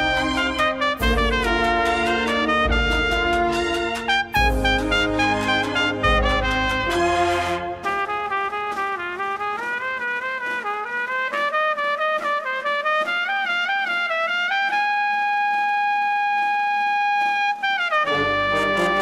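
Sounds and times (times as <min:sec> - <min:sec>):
full band playing: 0:00.0 - 0:09.4, 0:18.0 - 0:19.0
trumpets playing melody: 0:00.0 - 0:19.0.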